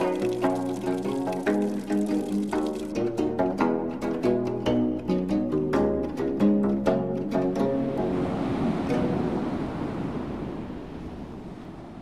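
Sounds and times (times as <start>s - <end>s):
ocean waves breaking on beach: 7.9s - 12.0s.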